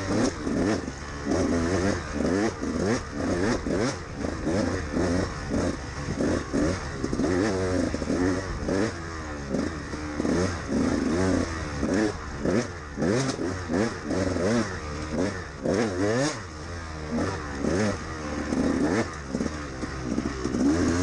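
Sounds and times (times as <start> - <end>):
two-stroke engine revving: 0.0 - 21.0.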